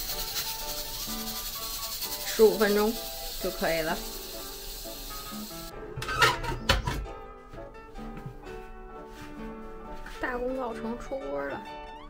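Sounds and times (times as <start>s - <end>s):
metal scraping on pot rim: 0.0s - 6.6s
background music: 0.0s - 12.0s.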